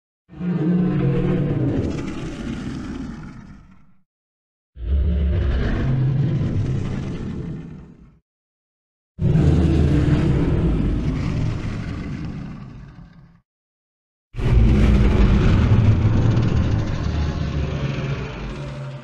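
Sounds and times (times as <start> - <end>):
deep noisy bursts: 14.4 - 19.0.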